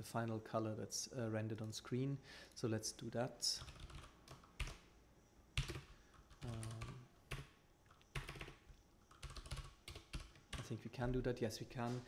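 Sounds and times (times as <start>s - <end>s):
typing on computer keyboard: 3.6s - 4.8s, 5.6s - 10.7s.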